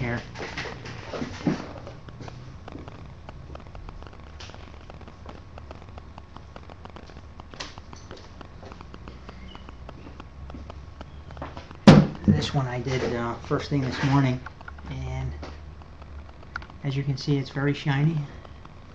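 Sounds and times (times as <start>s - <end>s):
faint clicks and knocks: 0.0s - 18.9s.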